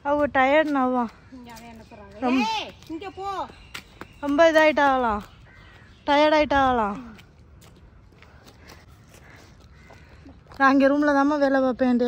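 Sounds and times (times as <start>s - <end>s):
faint outdoor background: 0.0s - 12.0s
quiet footsteps on paving: 0.0s - 12.0s.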